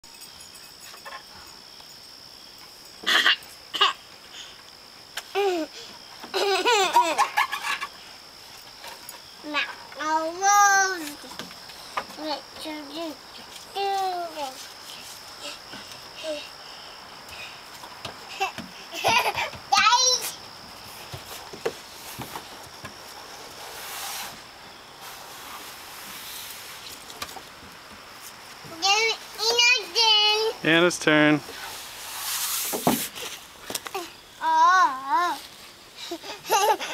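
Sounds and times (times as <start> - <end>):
toddler vocal sound: 5.3 - 5.8, 33.9 - 36.9
soft swish on plastic slide: 31.5 - 33.4.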